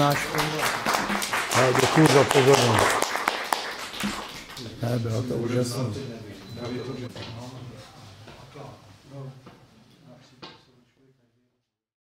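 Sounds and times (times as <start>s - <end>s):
people clapping: 0.0s - 5.1s.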